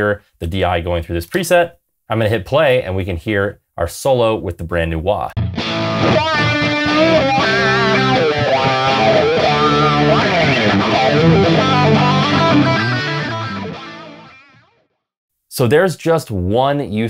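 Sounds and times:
backing track: 5.4 - 14.5
electric guitar solo with wah: 5.4 - 14.6.

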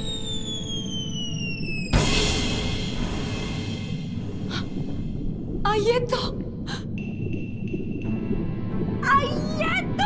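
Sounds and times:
cartoon falling whistle: 0.0 - 2.0
low rumble: 2.0 - 9.4.

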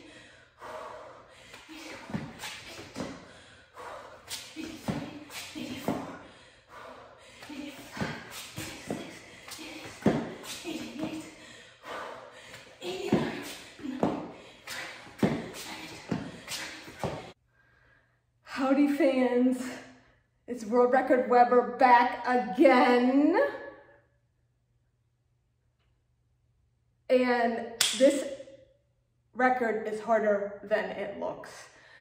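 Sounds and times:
sneakers tapping on exercise mat: 7.8 - 11.3, 12.8 - 17.3.

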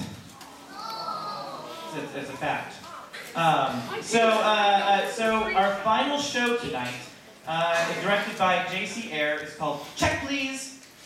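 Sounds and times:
child's voice: 0.5 - 2.0
man speaking over loudspeaker: 3.4 - 10.8.

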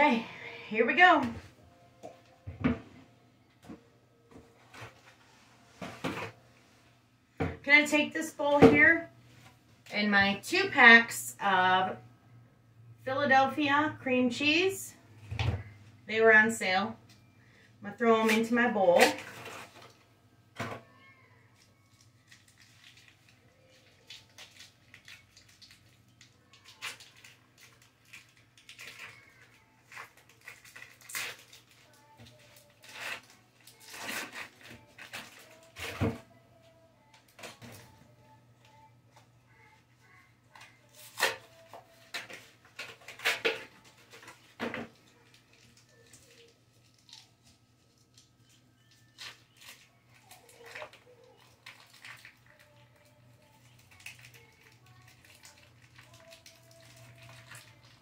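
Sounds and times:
foil wrappers crinkling: 21.6 - 36.2, 39.5 - 58.0.

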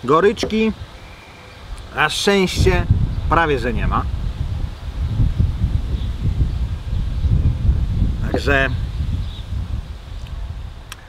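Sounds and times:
wind on microphone: 0.2 - 11.0.

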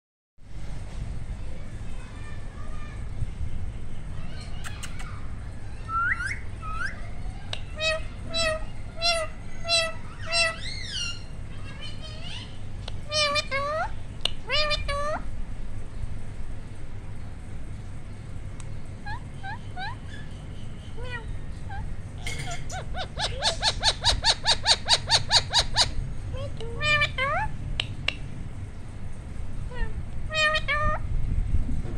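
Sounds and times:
parakeet whistled calls: 5.8 - 13.8, 19.0 - 21.2, 22.4 - 26.0
parakeet harsh calls: 6.1 - 15.3, 19.0 - 26.0, 26.7 - 27.5, 29.7 - 31.0.

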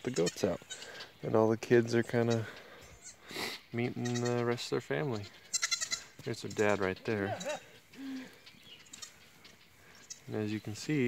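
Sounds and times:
goat bleat: 0.0 - 1.1, 2.2 - 9.2.

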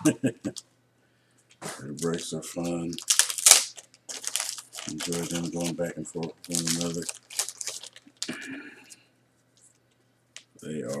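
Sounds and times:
packaging crinkling by hand: 1.9 - 8.5.

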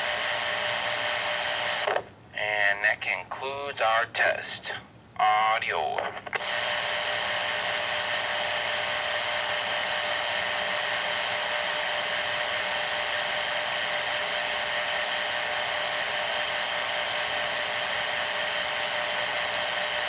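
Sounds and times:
faint hum tone: 0.0 - 20.0
radio static hiss: 0.0 - 20.0.

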